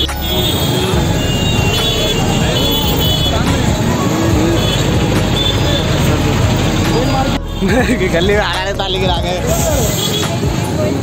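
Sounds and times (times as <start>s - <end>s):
crowd voices: 0.0s - 11.0s
rickshaw and motorcycle engines: 0.0s - 11.0s.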